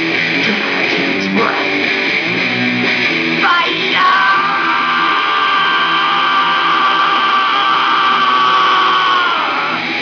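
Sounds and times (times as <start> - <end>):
distorted electric guitar: 0.0 - 10.0
singer screaming a held note: 3.4 - 9.8.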